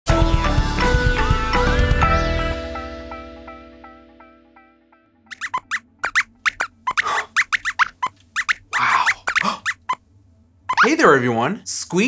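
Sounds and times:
robotic squeaks and chirps: 0:05.3 - 0:10.0, 0:10.7 - 0:11.0.

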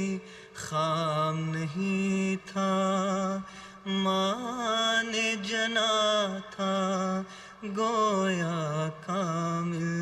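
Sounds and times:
man chanting unaccompanied: 0:00.0 - 0:10.0.

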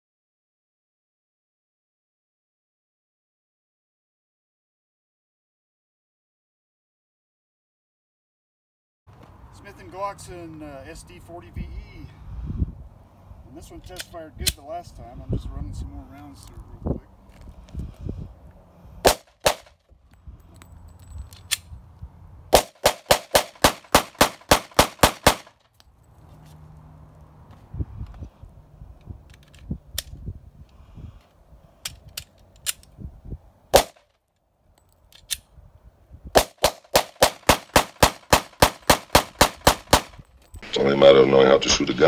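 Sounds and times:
pistol shots: 0:19.0 - 0:19.8, 0:22.5 - 0:25.5, 0:33.7 - 0:34.0, 0:36.4 - 0:40.2.

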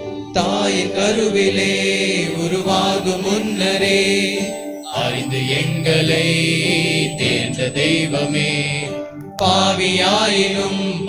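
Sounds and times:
voices singing a hymn: 0:00.3 - 0:11.0
sustained instrumental accompaniment: 0:02.1 - 0:09.7.

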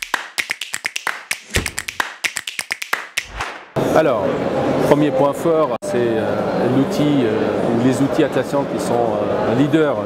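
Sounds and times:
rapid crisp clicks and taps: 0:00.0 - 0:03.6.

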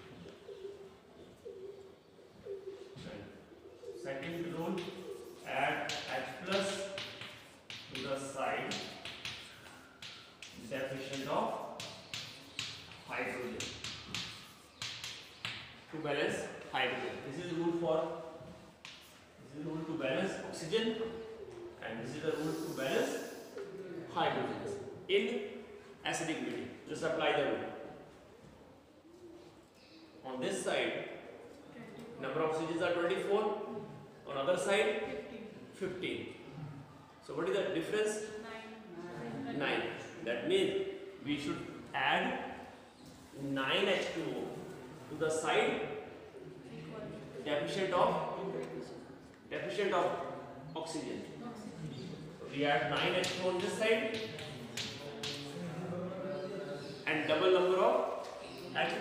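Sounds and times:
dove cooing: 0:00.0 - 0:04.1, 0:04.8 - 0:05.4.

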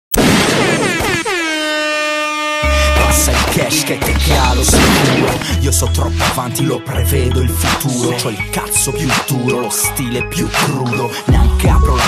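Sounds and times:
air horn swooping down: 0:00.5 - 0:05.5.

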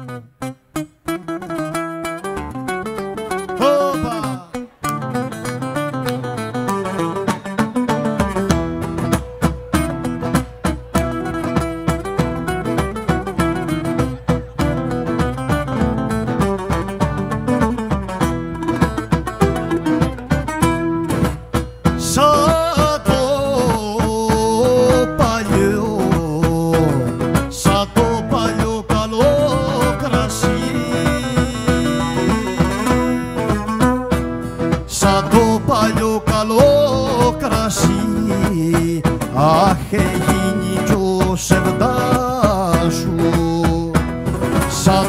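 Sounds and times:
strummed lute: 0:00.0 - 0:45.0
steady drum beat: 0:08.5 - 0:45.0.

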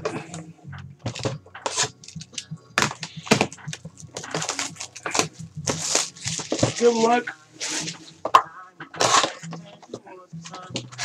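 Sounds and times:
plastic shrink wrap crackling: 0:01.2 - 0:08.4.

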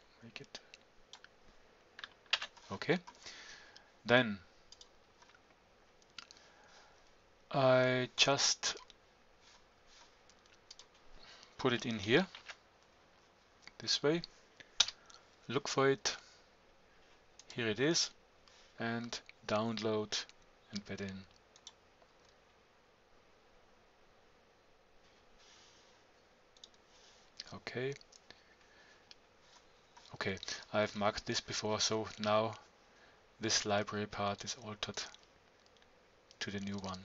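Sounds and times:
faint keyboard clicks: 0:04.7 - 0:06.5, 0:10.0 - 0:11.5, 0:32.0 - 0:32.6, 0:34.3 - 0:37.0.

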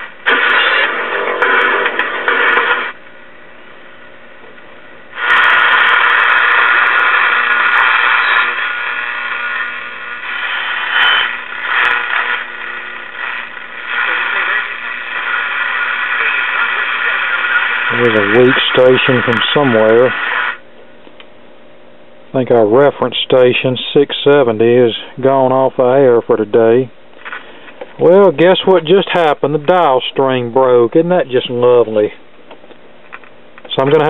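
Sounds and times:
radio broadcast through raspy speaker: 0:00.0 - 0:03.0, 0:05.2 - 0:20.6, 0:22.4 - 0:32.2, 0:33.6 - 0:34.0
radio static and hiss: 0:00.0 - 0:03.0, 0:05.1 - 0:20.6, 0:22.4 - 0:32.2, 0:33.1 - 0:34.0
radio whistle: 0:00.3 - 0:03.0, 0:05.2 - 0:20.6.

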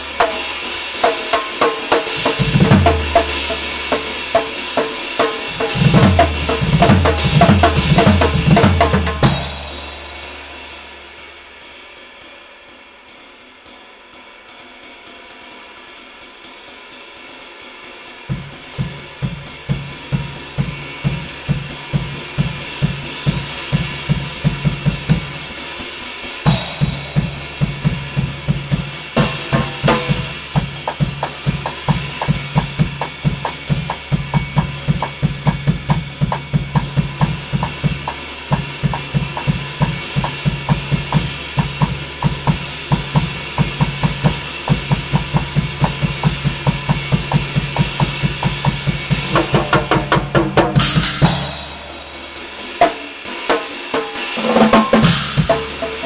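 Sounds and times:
drum kit groove: 0:00.0 - 0:13.7, 0:15.3 - 0:56.0
loud cymbal crashes: 0:00.0 - 0:56.0
ride cymbal wash: 0:00.0 - 0:56.0.

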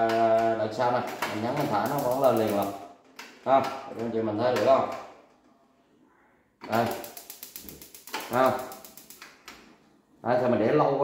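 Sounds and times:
gas hob igniter clicking rapidly: 0:01.6 - 0:02.8, 0:06.8 - 0:09.5.

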